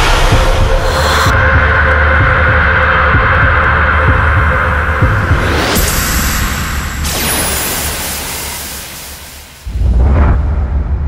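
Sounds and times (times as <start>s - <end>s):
low throbbing drone: 0.0s - 7.0s.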